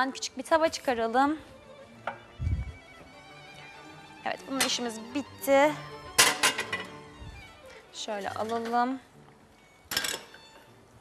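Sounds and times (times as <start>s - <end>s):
faint background hiss: 0.0s - 11.0s
metallic cookware clatter: 6.2s - 6.9s.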